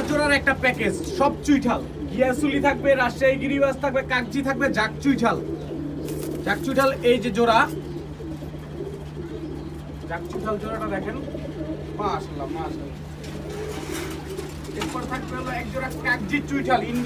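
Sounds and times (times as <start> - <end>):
low electrical hum: 0.0 - 17.0
pigeons cooing: 0.0 - 17.0.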